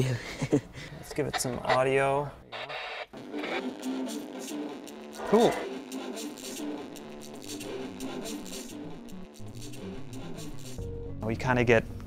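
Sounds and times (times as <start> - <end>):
music through small radio speaker: 2.5 - 10.8.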